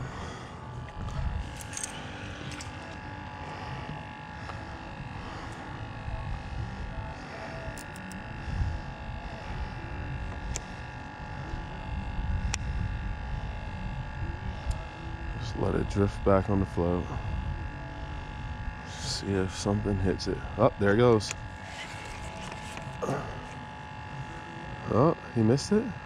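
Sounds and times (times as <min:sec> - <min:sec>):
faint steady hum: 0:00.0 - 0:26.0
wind rumbling on microphone: 0:00.8 - 0:02.3, 0:08.2 - 0:18.9.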